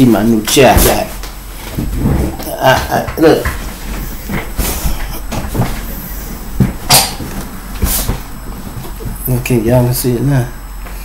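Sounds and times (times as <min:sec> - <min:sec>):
microphone handling rustling: 0:00.4 - 0:09.5
knocks and bumps: 0:00.6 - 0:09.3.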